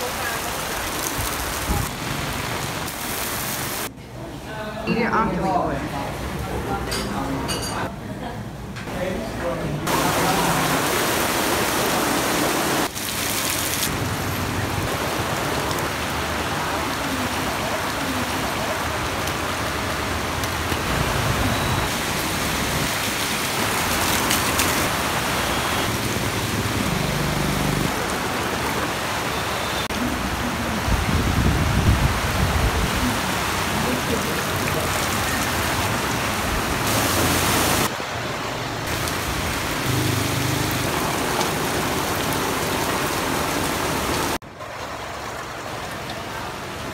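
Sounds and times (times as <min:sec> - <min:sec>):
heavy rain on a flooded street: 0:00.0 - 0:03.9, 0:09.8 - 0:46.9
vehicle engine: 0:23.6 - 0:29.0.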